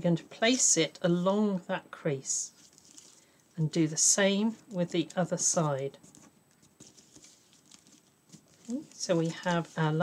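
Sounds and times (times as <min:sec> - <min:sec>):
paper rustling and tapping: 0:06.0 - 0:10.0.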